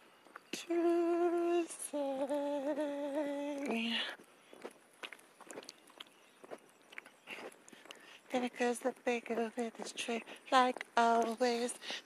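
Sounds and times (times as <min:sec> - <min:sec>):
footsteps on paved road: 0:03.6 - 0:12.0.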